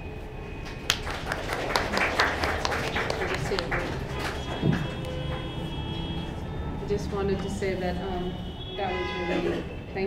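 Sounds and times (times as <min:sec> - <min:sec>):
audience hand clapping: 0:00.6 - 0:05.7.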